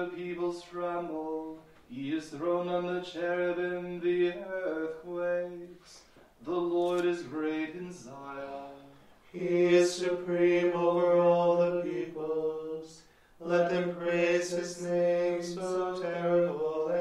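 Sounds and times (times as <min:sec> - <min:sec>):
voices chanting a psalm: 0:00.0 - 0:17.0.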